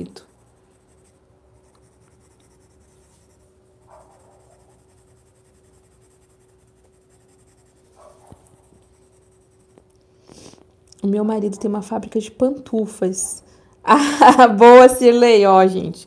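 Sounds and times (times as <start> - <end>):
coloured pencil shading on paper: 0.0 - 9.8
faint steady hum: 0.0 - 16.0.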